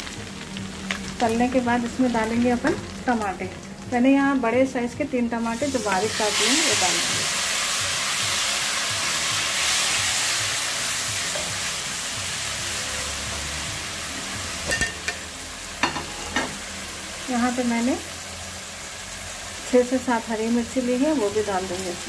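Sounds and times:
tomatoes sizzling in hot oil: 0.0s - 22.0s.

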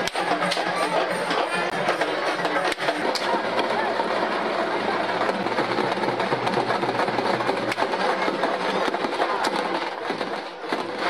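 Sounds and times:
festival crowd din: 0.0s - 11.0s.

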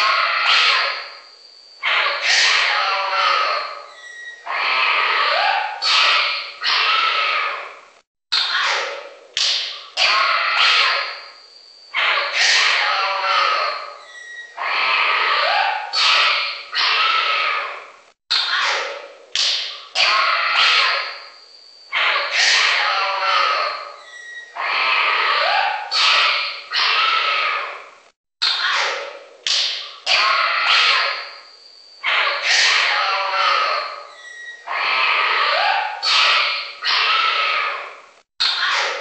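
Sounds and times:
wild animal cries and calls: 0.0s - 39.0s
rising animal call: 1.8s - 7.8s, 12.0s - 18.8s, 21.9s - 28.9s, 32.0s - 39.0s.

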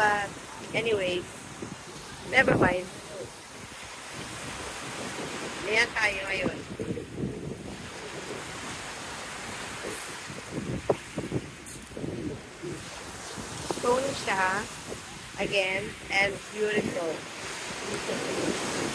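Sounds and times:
waves on a pebble beach: 0.0s - 18.9s
wind buffeting microphone: 0.0s - 18.9s.

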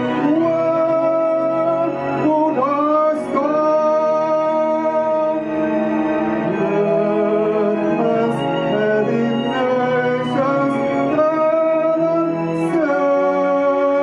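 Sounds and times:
man singing into a microphone: 0.0s - 14.0s.

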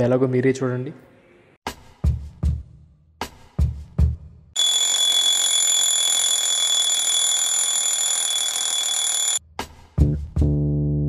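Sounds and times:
electronic alarm buzzing: 4.6s - 9.4s.

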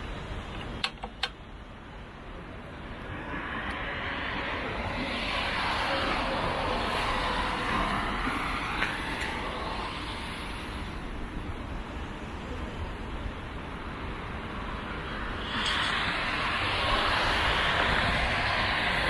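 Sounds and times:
sharp click: 0.6s - 1.4s
vehicle passing: 15.2s - 19.0s.

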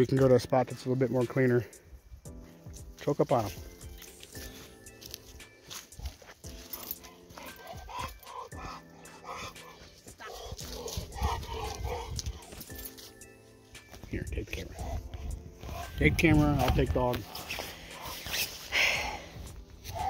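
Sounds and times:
background music with held notes: 0.0s - 20.0s
footsteps crunching on dry leaves: 2.3s - 20.0s
dog vocalizing: 6.8s - 12.7s, 14.7s - 16.0s.

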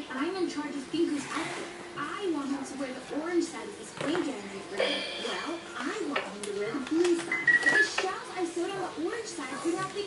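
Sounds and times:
toy piano electronic beeps: 7.3s - 8.0s.

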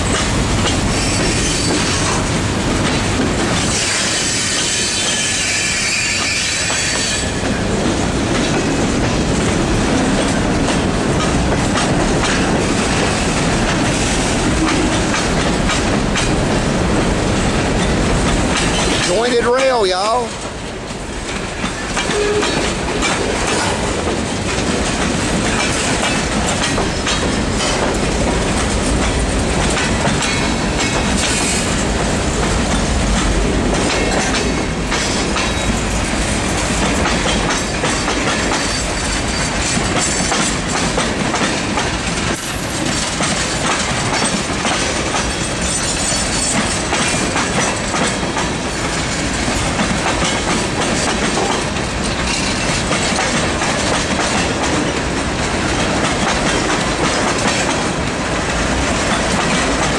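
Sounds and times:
freight train rolling past: 0.0s - 59.9s
wheels clickety-clack: 0.0s - 59.9s.

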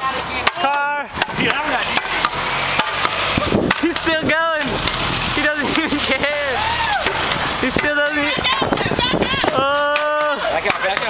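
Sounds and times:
pogo stick bouncing on pavement: 0.4s - 11.0s
young people whooping and shouting: 6.2s - 11.0s.

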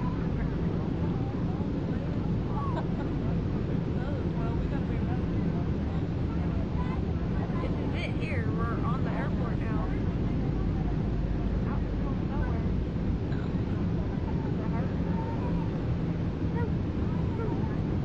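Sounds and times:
aircraft cabin rumble and hum: 0.0s - 18.0s
faint voices: 0.0s - 18.0s.

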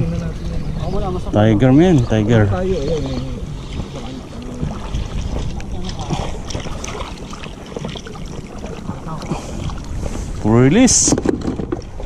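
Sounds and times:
water lapping against boat: 0.0s - 12.0s
wind buffeting microphone: 0.0s - 12.0s.

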